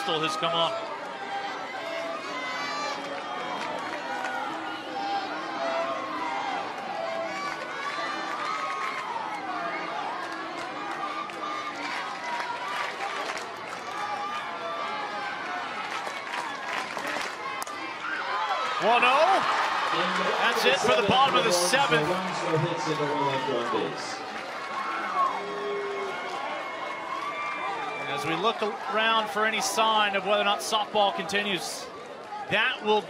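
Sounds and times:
crowd noise: 0.0s - 33.0s
fans calling out and cheering: 0.0s - 33.0s.

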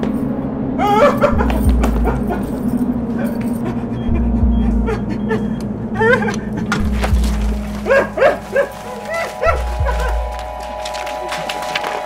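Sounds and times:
low drone tone: 0.0s - 12.0s
heavy low pulses: 0.3s - 12.0s
wavering yelping cries: 7.8s - 10.4s.

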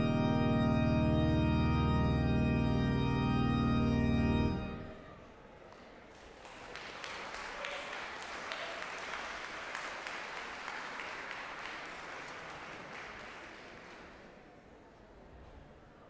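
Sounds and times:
audience applauding: 5.7s - 14.5s.

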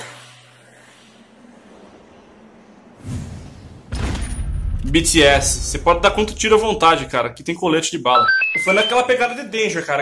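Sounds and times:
low steady hum: 1.3s - 7.6s.

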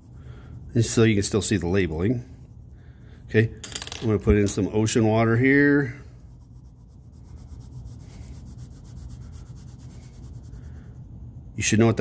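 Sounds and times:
colored pencil scratching on paper: 0.0s - 2.5s, 5.3s - 11.1s.

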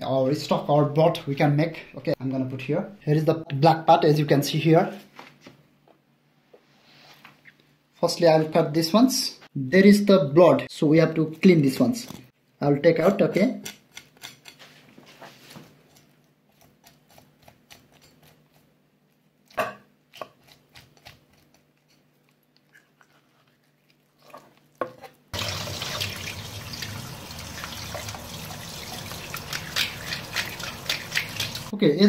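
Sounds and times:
knife scraping fish: 13.6s - 14.7s, 15.9s - 18.7s, 29.4s - 31.7s.

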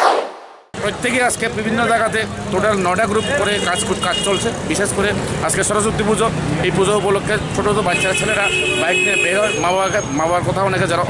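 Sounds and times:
street traffic noise: 0.8s - 11.0s.

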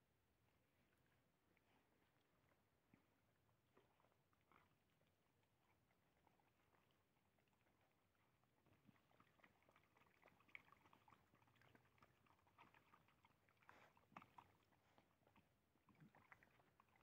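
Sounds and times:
dogs chewing food: 7.7s - 17.0s.

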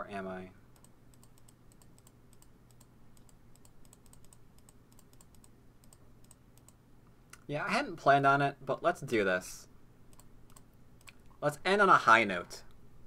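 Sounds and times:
typing on computer keyboard: 0.8s - 6.8s.

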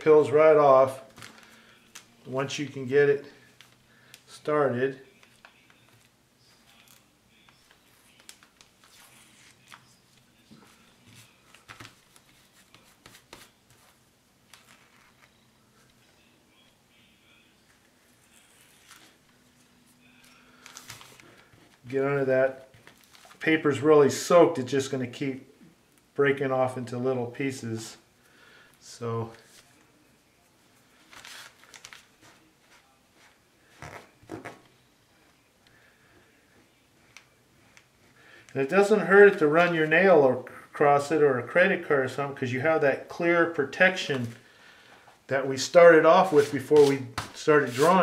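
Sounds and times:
scrubbing wet paper: 46.2s - 48.0s.

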